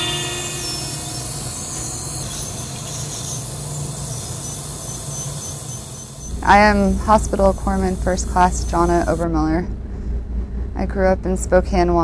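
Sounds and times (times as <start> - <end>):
low hum: 0.0 - 5.1, 5.7 - 12.0
steady hiss: 0.0 - 9.3
high thin whine: 0.0 - 10.1.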